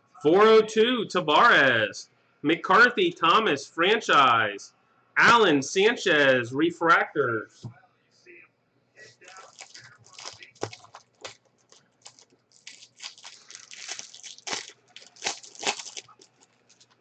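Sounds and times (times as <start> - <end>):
trading cards rustling and snapping: 9.2 - 17.0.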